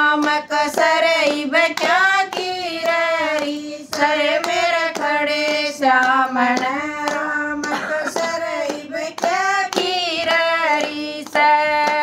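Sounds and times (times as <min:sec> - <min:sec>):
hand claps: 0:00.0 - 0:12.0
women singing unaccompanied: 0:00.0 - 0:12.0.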